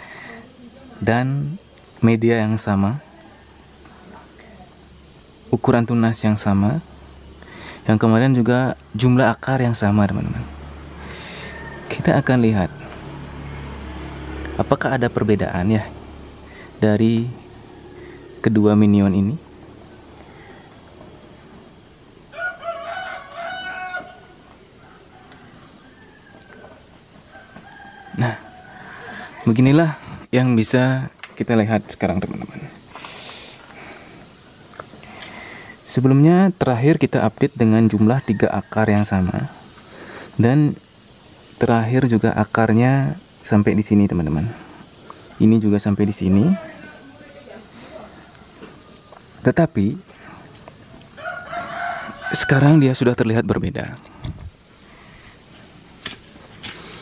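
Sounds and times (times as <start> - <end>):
faint outdoor background noise: 0.0 - 57.0
rooster crowing faintly: 2.6 - 5.5, 8.9 - 30.0, 37.8 - 40.4, 46.2 - 53.2
short hiss: 6.9 - 7.9, 32.7 - 35.9, 39.5 - 41.9, 44.2 - 45.6, 54.0 - 57.0.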